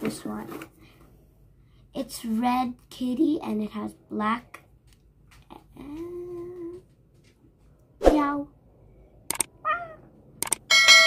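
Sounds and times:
sharp double click: 0:09.3 - 0:09.5, 0:10.4 - 0:10.6.

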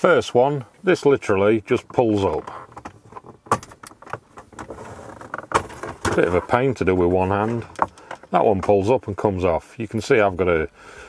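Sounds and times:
plastic trim clicks and creaks: 0:07.3 - 0:08.8.

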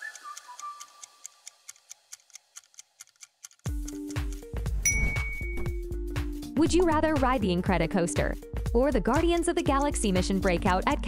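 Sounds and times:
fast clock ticking: 0:00.0 - 0:04.7.

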